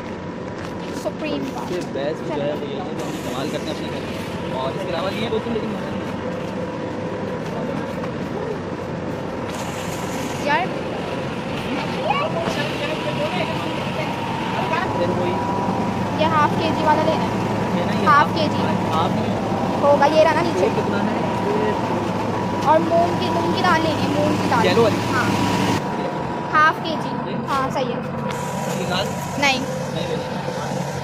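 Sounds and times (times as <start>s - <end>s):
constant hum: 0.0s - 31.0s
shoppers chattering: 1.0s - 27.0s.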